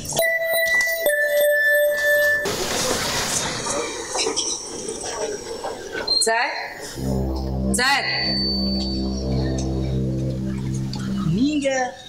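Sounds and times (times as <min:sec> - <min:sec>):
held music notes: 0:00.0 - 0:02.5, 0:07.0 - 0:12.0.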